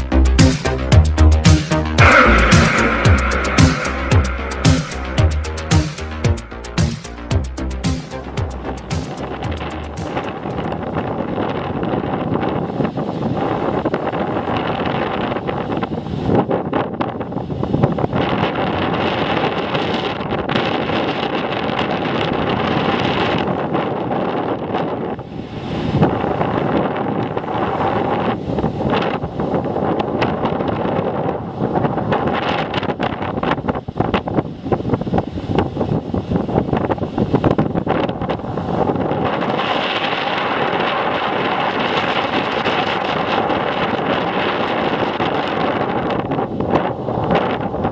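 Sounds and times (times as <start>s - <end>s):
surf breaking on rocky shore: 2.0s - 7.2s, 9.0s - 47.9s
wind buffeting microphone: 2.0s - 47.9s.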